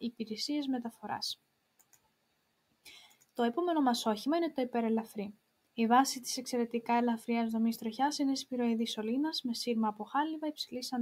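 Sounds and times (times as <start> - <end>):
woman speaking: 0.0 - 1.4, 3.4 - 11.0
faint computer clicks: 1.8 - 2.2, 2.9 - 3.4.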